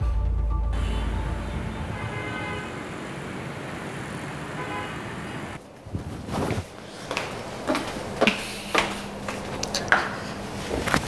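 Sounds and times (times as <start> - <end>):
faint horn toots: 0.8 - 3.0
motorbike and car traffic: 0.8 - 11.0.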